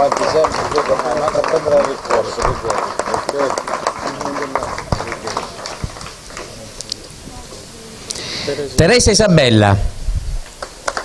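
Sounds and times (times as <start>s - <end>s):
audience applauding: 0.0s - 6.8s, 10.5s - 11.0s
voices talking: 0.0s - 9.9s.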